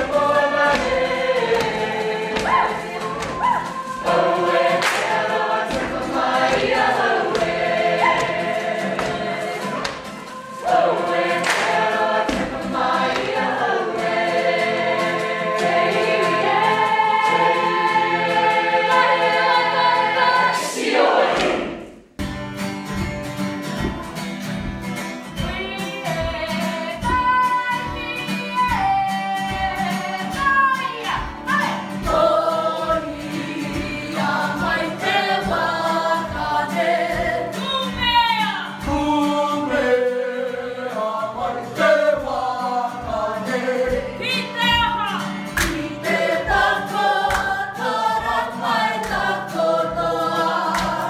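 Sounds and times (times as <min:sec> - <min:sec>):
group singing in unison: 0:00.0 - 0:22.1, 0:25.3 - 0:51.0.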